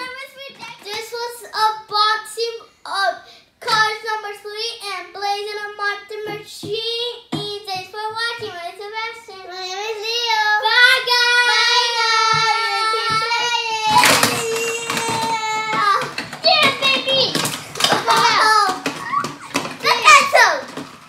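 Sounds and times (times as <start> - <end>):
child singing: 5.5 - 16.0.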